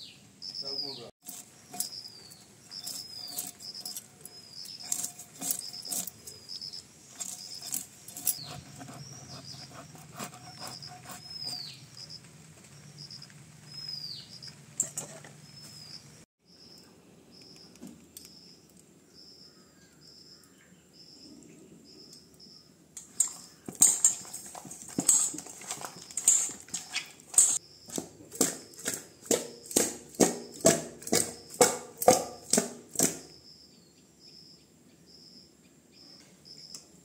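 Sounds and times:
bird chirping: 0.0s - 29.8s, 30.5s - 36.9s.

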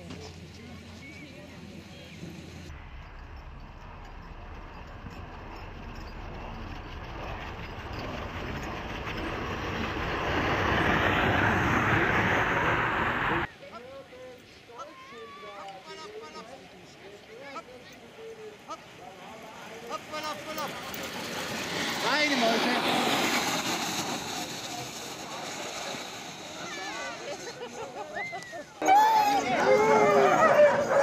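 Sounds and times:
sled runners and paws on snow: 0.0s - 11.8s, 14.1s - 31.0s.

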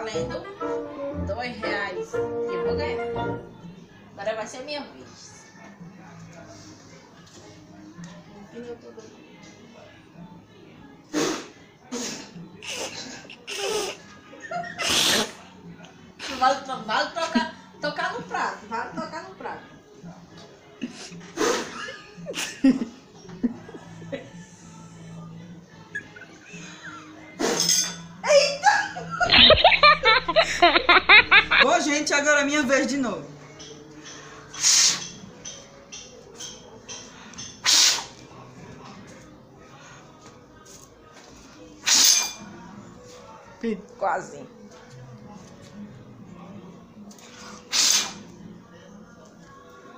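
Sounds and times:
woman blowing a puff of breath: 11.1s - 12.3s, 37.6s - 38.1s, 47.6s - 48.2s.

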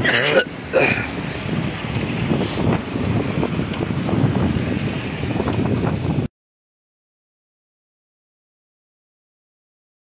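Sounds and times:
street noise: 0.0s - 6.3s
wind buffeting microphone: 0.0s - 6.3s.

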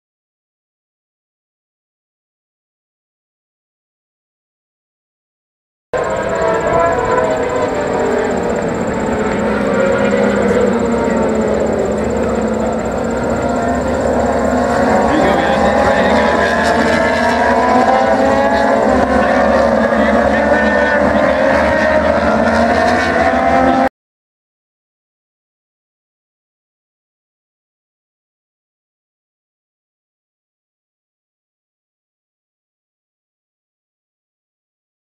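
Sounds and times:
racing motorcycle engines: 6.0s - 23.9s.

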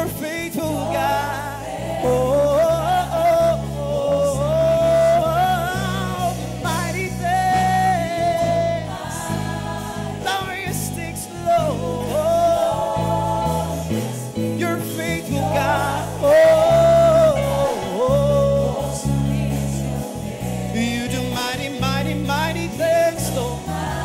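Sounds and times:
instrumental accompaniment with bass: 0.0s - 24.0s
worship team singing: 0.0s - 24.0s.

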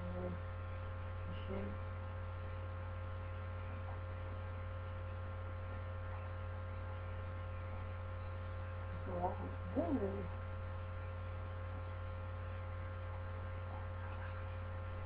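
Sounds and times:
mains hum: 0.0s - 15.0s.

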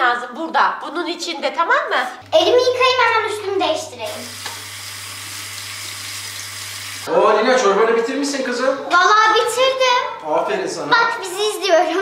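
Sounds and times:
tap running into washbasin: 4.2s - 7.1s.

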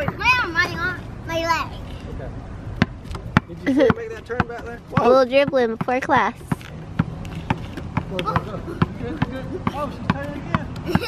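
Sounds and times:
basketball bouncing on asphalt: 0.0s - 0.9s, 2.7s - 11.0s.

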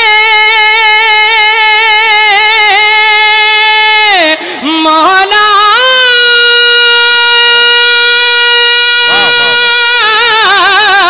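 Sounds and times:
person singing long high note: 9.0s - 10.0s.

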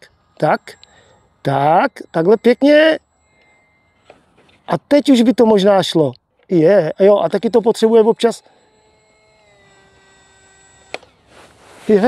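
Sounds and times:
small electric motor whine: 0.0s - 12.0s.

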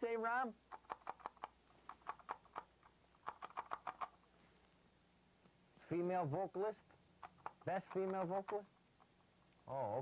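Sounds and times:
puppet clicks and chatters: 0.0s - 4.3s, 6.0s - 10.0s.

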